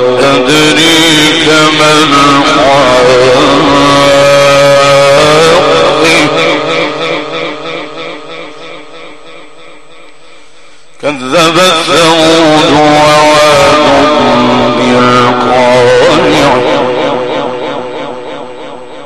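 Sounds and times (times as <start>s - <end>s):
man chanting recitation: 0.0s - 10.4s, 11.0s - 19.0s.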